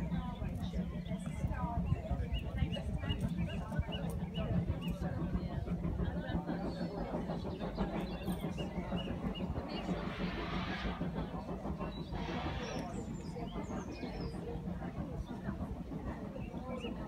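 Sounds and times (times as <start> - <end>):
people talking at once: 0.0 - 17.0
hissing noise: 7.6 - 16.0.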